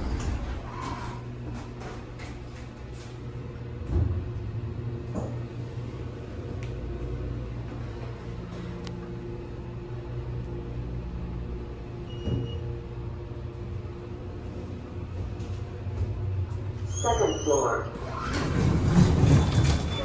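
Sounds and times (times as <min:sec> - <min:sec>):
elevator mechanical hum: 0:00.0 - 0:20.0.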